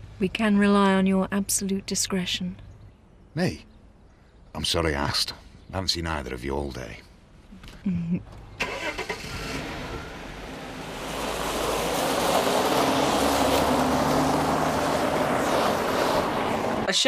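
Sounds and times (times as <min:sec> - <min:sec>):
tyres crunching on gravel: 0:10.4 - 0:16.9.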